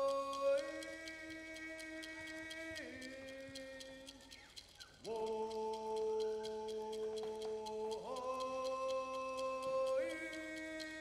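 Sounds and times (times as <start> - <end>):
young man singing unaccompanied: 0.0 - 4.3, 5.0 - 11.0
faint regular ticks: 0.0 - 11.0.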